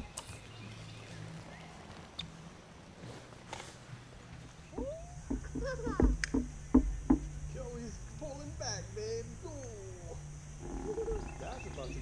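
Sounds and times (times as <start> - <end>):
sharp knocks: 4.8 - 7.4.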